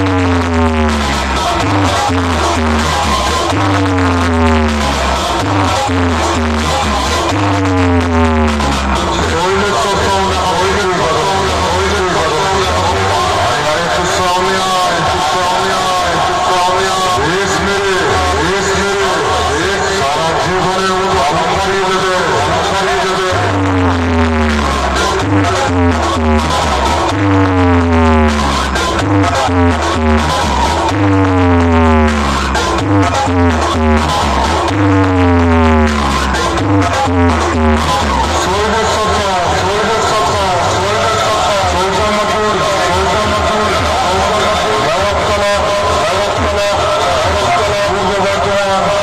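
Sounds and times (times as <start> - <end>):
heavy-bass electronic music: 0.0 - 49.0
loud dj mix over loudspeakers: 0.0 - 49.0
swooping pitch effect: 22.2 - 38.5.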